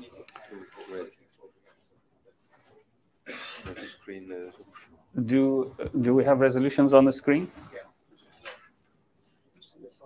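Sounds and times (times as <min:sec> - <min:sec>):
man clearing his throat: 0:03.2 - 0:04.1.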